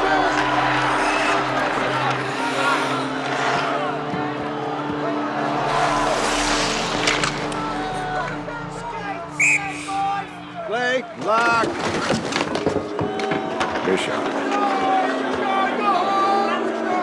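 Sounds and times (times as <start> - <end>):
arena crowd noise: 0.0 - 17.0.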